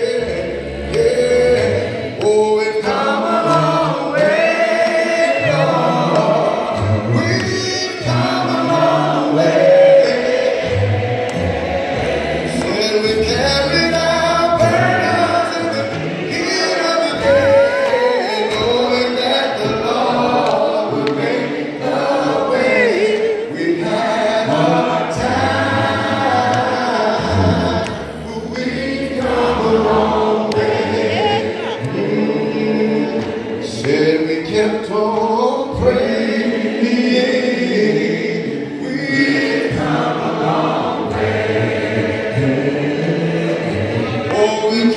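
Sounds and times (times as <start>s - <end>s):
man singing into a microphone: 0.0s - 10.5s, 12.6s - 21.5s, 22.2s - 40.1s, 43.1s - 44.9s
congregation singing a hymn: 0.0s - 44.9s.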